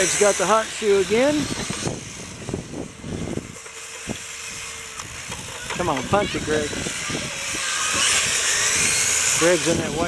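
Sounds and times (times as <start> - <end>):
remote control cars running: 0.0 - 10.0.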